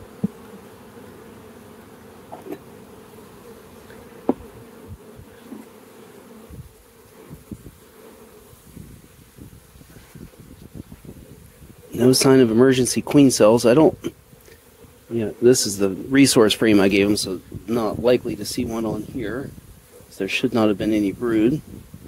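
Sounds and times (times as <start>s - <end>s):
bees humming: 0.0s - 22.0s
knocks of wooden frames: 4.2s - 4.5s.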